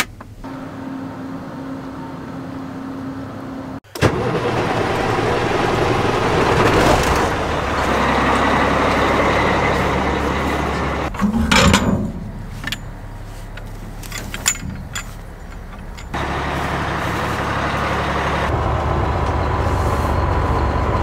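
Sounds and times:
heavy engine rumbling: 0.0s - 21.0s.

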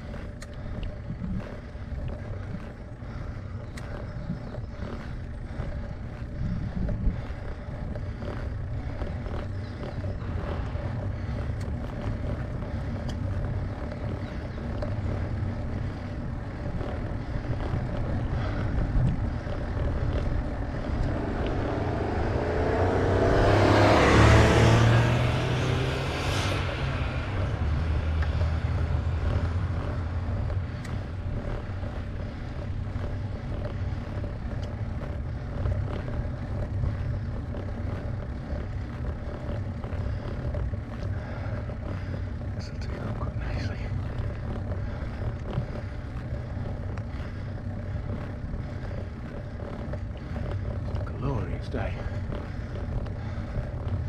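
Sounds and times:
steady low rumble: 0.0s - 54.0s
car passing: 7.1s - 54.0s.

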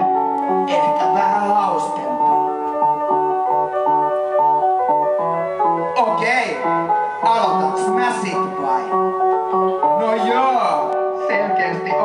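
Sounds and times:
synthesizer music: 0.0s - 12.0s.

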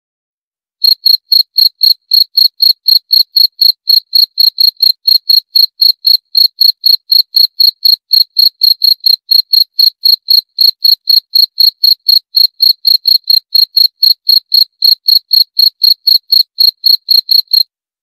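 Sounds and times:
cricket chirping: 0.8s - 17.6s.

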